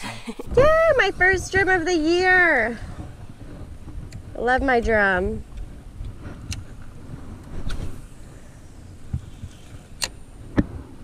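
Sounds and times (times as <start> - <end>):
low wind rumble: 0.0 - 11.0.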